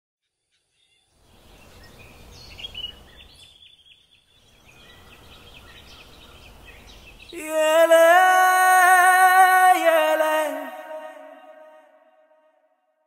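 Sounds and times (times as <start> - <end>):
small birds chirping: 0.2 - 8.9.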